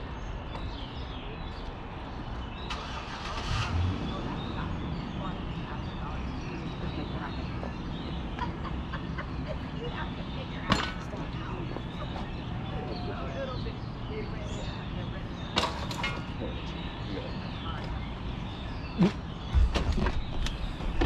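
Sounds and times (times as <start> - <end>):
bicycle road rumble: 0.0 - 21.0
wind: 0.0 - 21.0.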